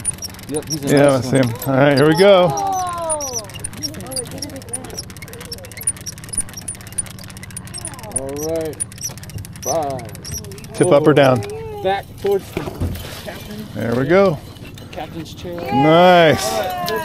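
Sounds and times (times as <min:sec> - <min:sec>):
boat engine idling: 0:00.0 - 0:17.0
fishing reel ticking: 0:00.0 - 0:17.0.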